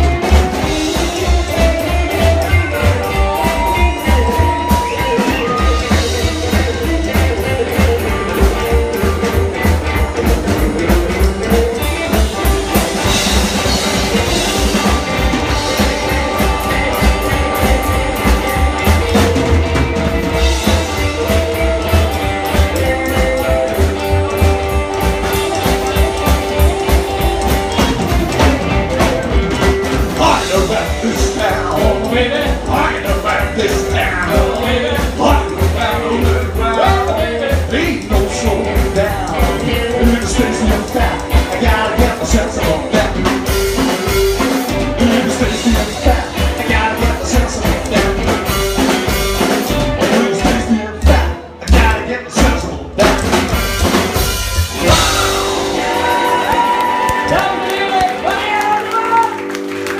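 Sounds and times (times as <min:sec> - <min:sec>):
upright double bass: 0:00.0 - 0:58.4
drum kit beat: 0:00.0 - 0:59.9
electric guitar melody: 0:00.0 - 0:59.9.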